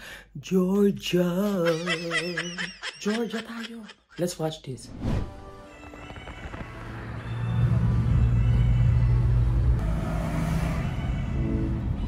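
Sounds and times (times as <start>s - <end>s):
road noise: 6.6s - 12.0s.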